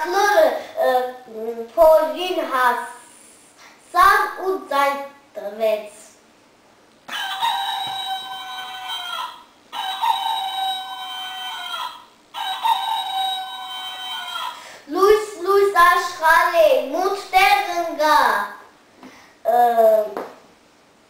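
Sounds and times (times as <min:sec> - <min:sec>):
rooster crowing: 0:07.1 - 0:14.6.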